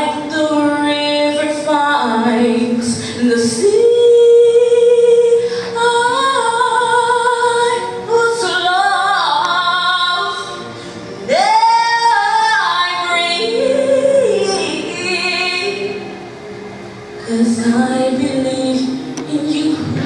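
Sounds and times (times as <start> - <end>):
person singing love ballad: 0.0 - 16.4, 17.1 - 20.0
backing music: 0.0 - 20.0.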